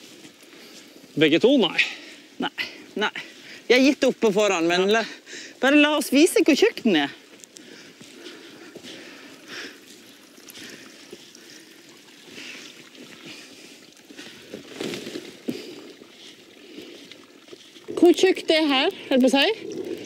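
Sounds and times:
brook trickling: 0:00.0 - 0:20.0
footsteps through undergrowth: 0:00.0 - 0:20.0
rustling through ferns: 0:00.0 - 0:20.0.

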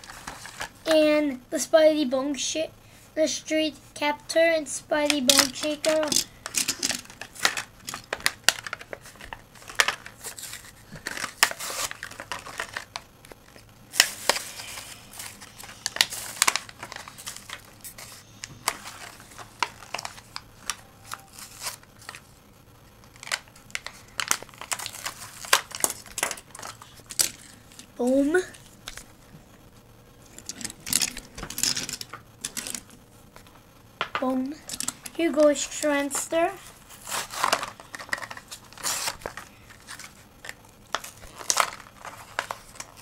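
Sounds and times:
toy cars clicking and clacking: 0:05.1 - 0:08.8
packaging crinkling: 0:05.3 - 0:22.3, 0:23.0 - 0:27.9, 0:30.2 - 0:33.0, 0:34.6 - 0:43.0.

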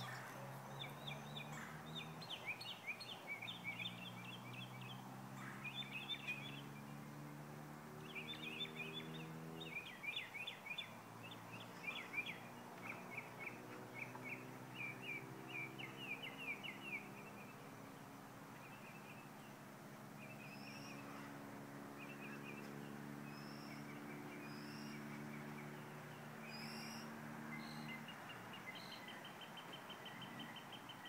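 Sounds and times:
birds chirping: 0:00.0 - 0:31.0.

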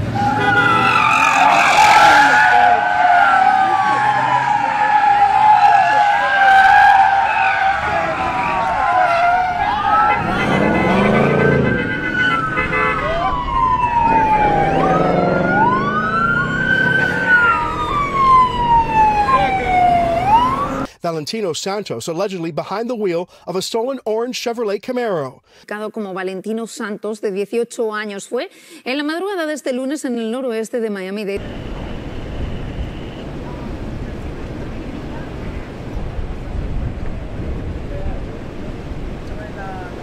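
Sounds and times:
police sirens wailing: 0:00.0 - 0:20.9.

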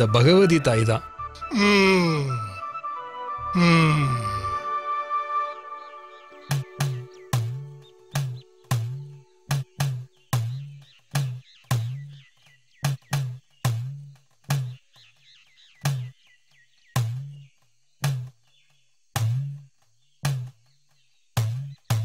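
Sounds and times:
bird-like chirps: 0:05.6 - 0:22.0
deep drum strikes: 0:06.4 - 0:12.2, 0:12.8 - 0:14.8, 0:21.4 - 0:22.0.

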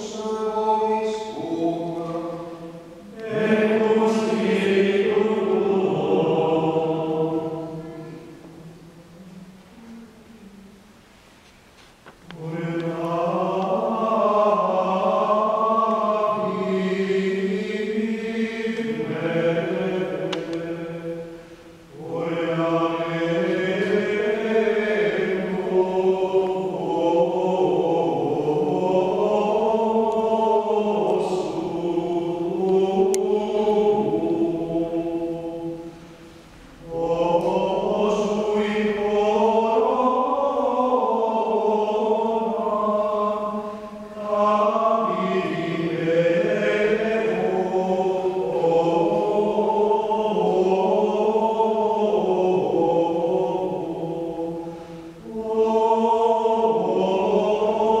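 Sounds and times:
men singing chant in unison: 0:00.0 - 0:07.8, 0:12.3 - 0:21.3, 0:21.9 - 0:35.9, 0:36.7 - 0:58.0.

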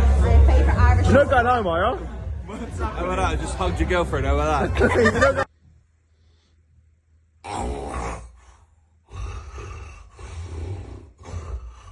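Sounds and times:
loud snoring: 0:09.1 - 0:11.9.

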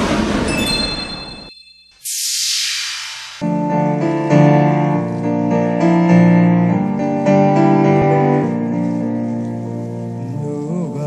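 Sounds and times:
high ringing tones: 0:00.5 - 0:03.5
loud whoosh: 0:02.0 - 0:04.0.

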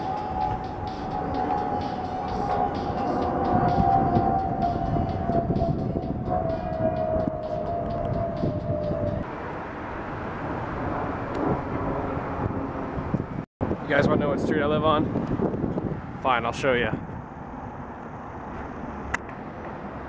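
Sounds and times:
whine falling in pitch: 0:00.0 - 0:09.2.

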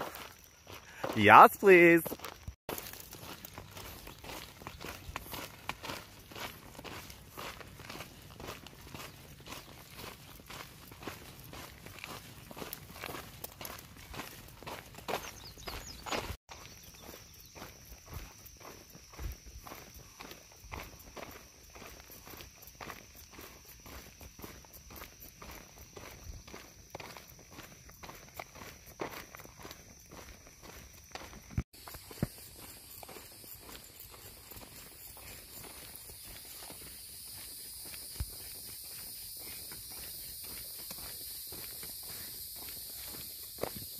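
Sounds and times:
footsteps crunching on gravel: 0:00.0 - 0:43.9.

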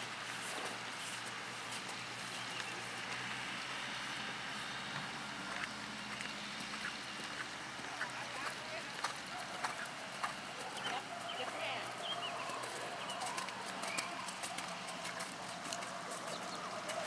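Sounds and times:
horse hoofbeats on sand: 0:05.4 - 0:17.0
bird chirps: 0:10.7 - 0:14.2.

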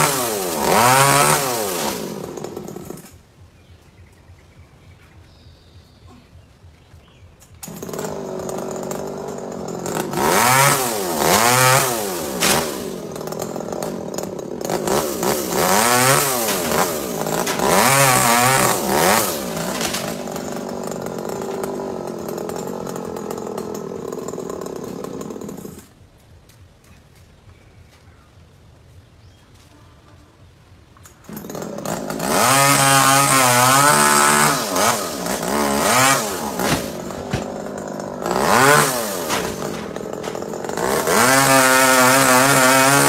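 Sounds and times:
chainsaw engine revving: 0:00.0 - 0:03.2, 0:07.6 - 0:25.9, 0:31.2 - 0:43.0.

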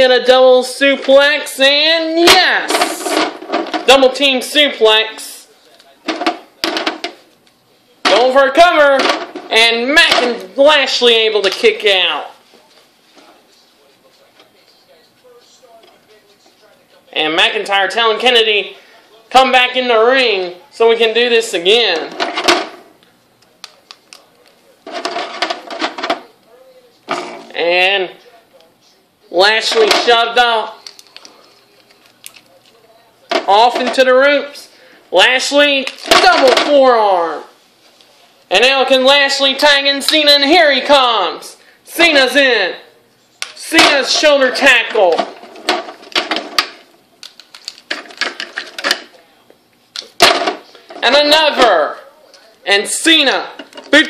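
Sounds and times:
plastic figures clacking: 0:02.2 - 0:04.3, 0:23.6 - 0:26.3, 0:29.6 - 0:34.1, 0:35.4 - 0:36.8, 0:43.4 - 0:49.2.

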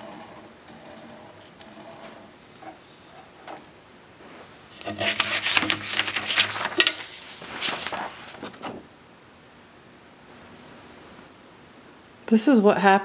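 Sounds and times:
knocks and scrapes on wood and paper: 0:04.3 - 0:08.8.

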